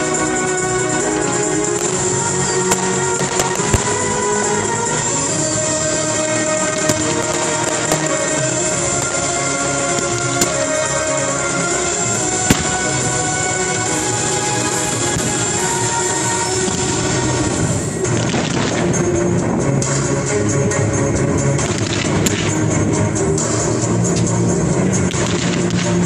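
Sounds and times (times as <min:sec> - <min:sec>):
fireworks bursting: 0:00.0 - 0:20.3, 0:21.6 - 0:24.3, 0:24.9 - 0:26.0
music with sustained notes: 0:00.0 - 0:26.0.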